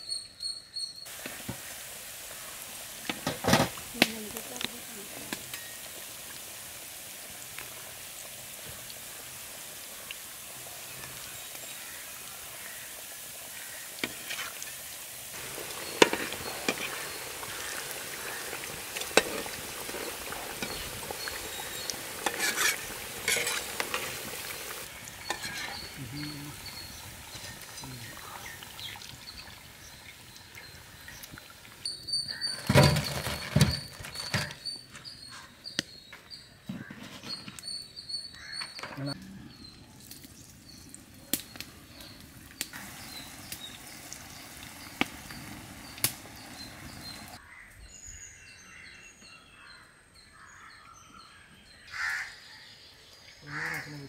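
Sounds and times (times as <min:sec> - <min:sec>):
hot oil sizzling: 0:01.0 - 0:36.5, 0:37.6 - 0:47.4.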